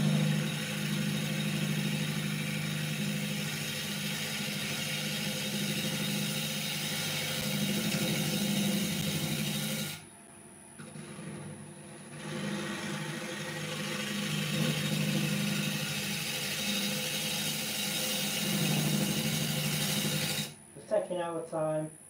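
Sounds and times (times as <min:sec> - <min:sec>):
gouge cutting spinning wood: 0:00.0 - 0:10.0, 0:10.8 - 0:20.6
wood lathe motor hum: 0:00.0 - 0:10.0, 0:10.8 - 0:20.6.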